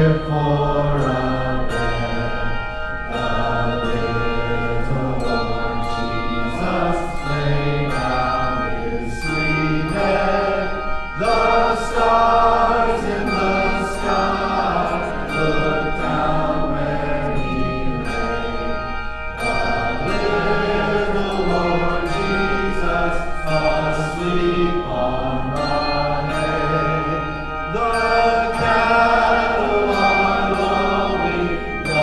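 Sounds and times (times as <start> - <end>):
group singing: 0.0 - 32.0
handbell choir ringing chords: 0.0 - 32.0.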